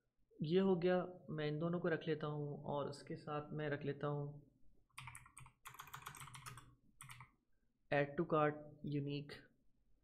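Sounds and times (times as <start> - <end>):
faint keyboard typing: 4.9 - 7.4.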